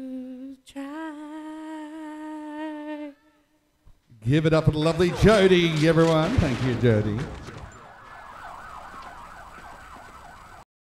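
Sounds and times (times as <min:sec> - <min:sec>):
warbling siren-like tone: 0:07.4 - 0:10.6.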